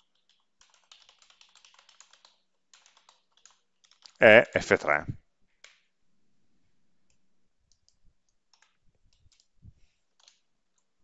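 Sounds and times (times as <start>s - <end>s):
computer keyboard clicks: 0.0s - 4.2s, 7.1s - 9.5s, 10.1s - 10.9s.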